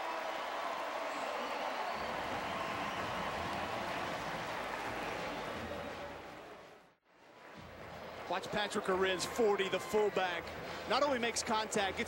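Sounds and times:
stadium crowd cheering and clapping: 0:00.0 - 0:12.0.

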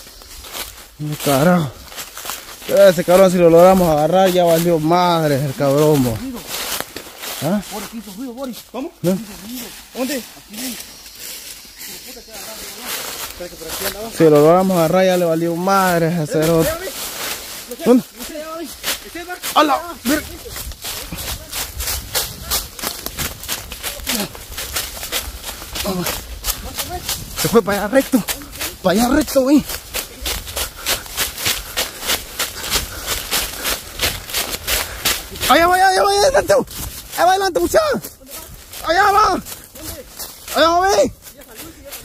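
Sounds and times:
footsteps crunching dry leaves: 0:00.0 - 0:42.0.

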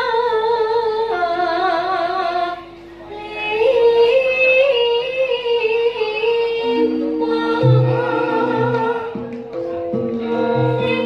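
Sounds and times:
woman singing with vibrato: 0:00.0 - 0:09.3, 0:10.2 - 0:11.0
gamelan ensemble: 0:06.3 - 0:11.0.

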